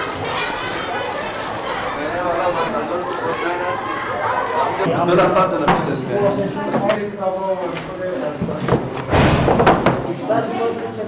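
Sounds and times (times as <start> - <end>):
books knocking on wooden shelf: 8.4 - 10.1.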